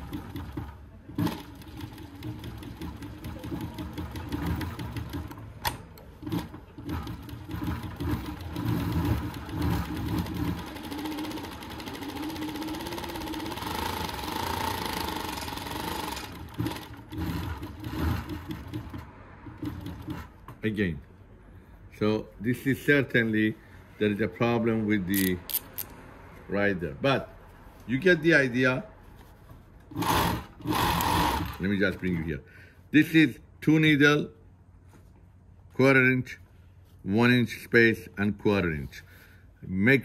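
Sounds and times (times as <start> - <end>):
sewing machine stitching: 0.0 - 20.4, 29.9 - 31.8.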